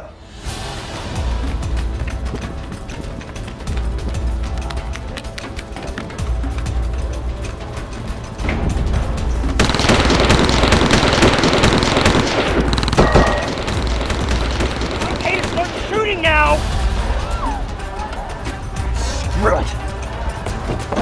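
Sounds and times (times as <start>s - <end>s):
background music with low bass: 0.0s - 21.0s
rapid automatic rifle fire: 9.6s - 16.2s.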